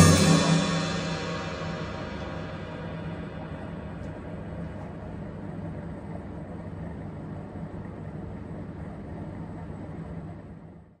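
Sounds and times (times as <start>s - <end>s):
low drone with rumbling hiss: 0.0s - 9.9s.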